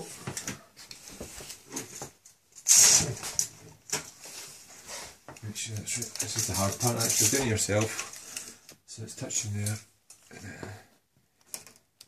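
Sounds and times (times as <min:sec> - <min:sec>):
tape measure clicks and rustles: 0:05.8 - 0:08.2.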